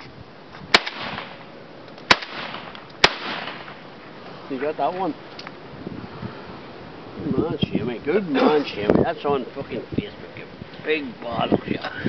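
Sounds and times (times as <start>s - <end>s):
shotgun shots with echo: 0.7s - 1.4s, 2.1s - 3.8s.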